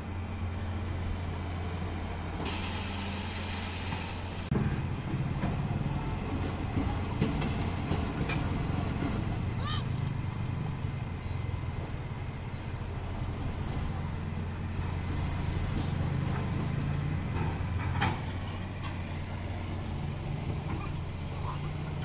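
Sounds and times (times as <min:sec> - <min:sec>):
diesel truck engine running: 0:00.0 - 0:22.0.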